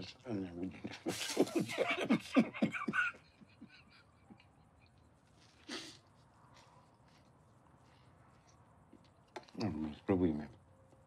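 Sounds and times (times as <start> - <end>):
men laughing: 0.7 - 5.0.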